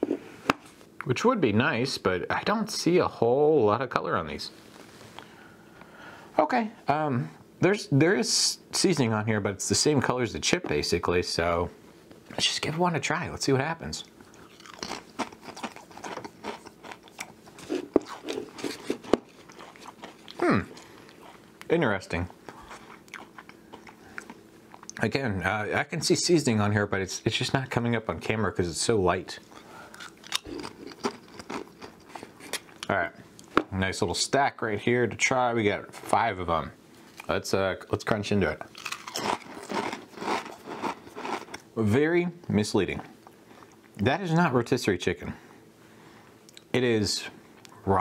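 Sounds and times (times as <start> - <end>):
chewing crisp crunches: 14.0 - 25.0, 29.4 - 32.9, 38.6 - 41.7.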